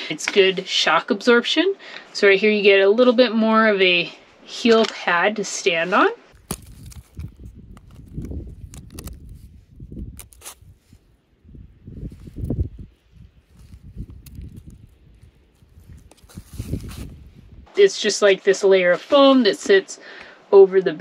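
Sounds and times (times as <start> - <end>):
wind buffeting microphone: 6.3 - 17.7
microphone handling clicks: 6.4 - 10.6.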